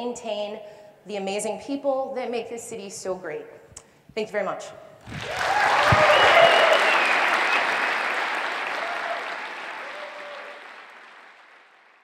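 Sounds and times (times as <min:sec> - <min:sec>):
audience applauding: 0:05.1 - 0:12.0.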